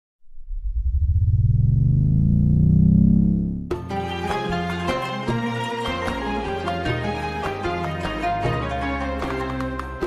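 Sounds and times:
deep synthesizer swell: 0.3 - 3.7.

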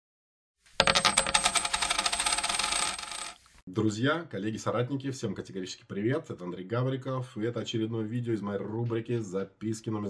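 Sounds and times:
coins clinking and jingling: 0.8 - 3.4.

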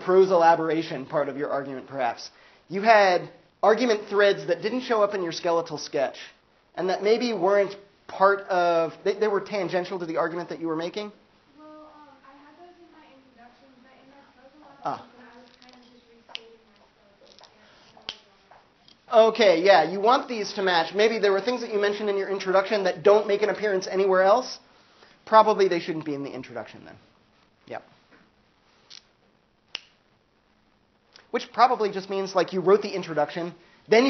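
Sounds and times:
faint steady hum: 0.0 - 34.0.

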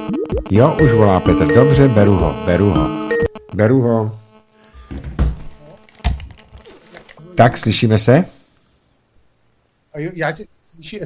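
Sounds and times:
faint steady tones: 0.0 - 4.2
studio equipment thunks: 4.8 - 6.3.

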